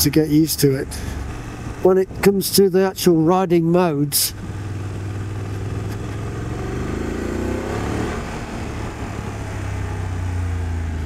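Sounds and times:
motorcycle engine accelerating: 0:04.4 - 0:11.0.

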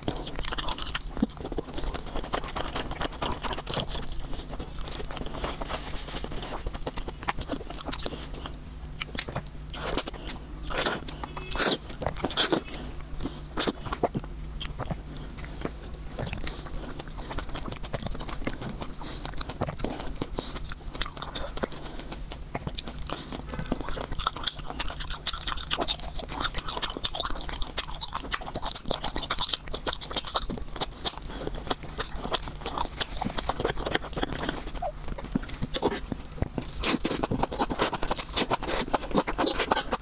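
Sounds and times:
wet chewing mouth sounds: 0:00.0 - 0:40.0.

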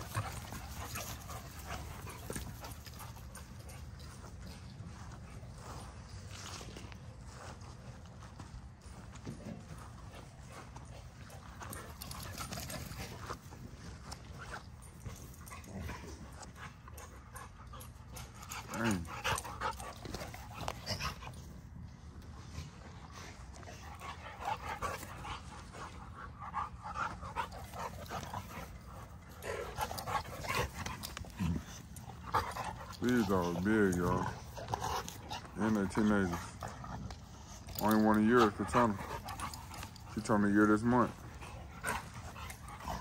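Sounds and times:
dogs panting: 0:00.0 - 0:43.0.

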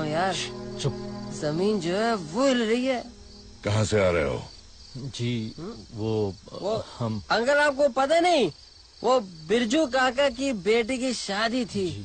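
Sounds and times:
man speaking: 0:03.6 - 0:10.4.

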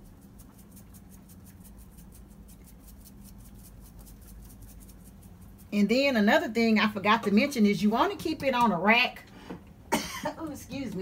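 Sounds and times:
seasoning shaker ticking: 0:00.0 - 0:07.5
steady low hum: 0:00.0 - 0:11.0.

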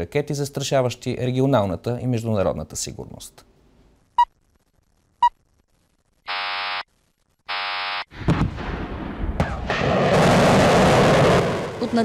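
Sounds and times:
launch alarm buzzes: 0:06.3 - 0:08.1
rocket engine roaring: 0:08.2 - 0:12.0.

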